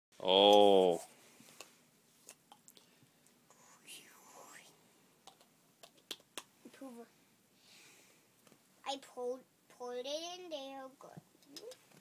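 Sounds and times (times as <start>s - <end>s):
child whispering: 3.5s - 4.8s.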